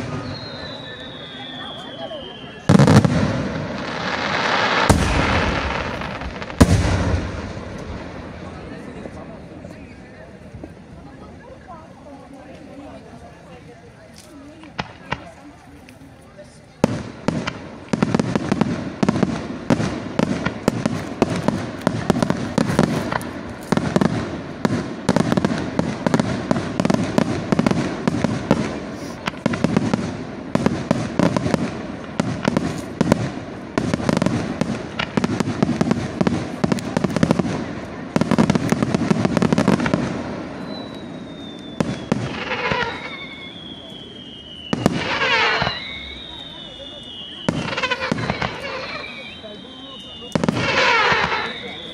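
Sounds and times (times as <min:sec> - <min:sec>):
fireworks whistles falling in pitch: 0:00.0 - 0:07.6, 0:38.2 - 0:51.9
fireworks cracking and banging: 0:00.0 - 0:51.9.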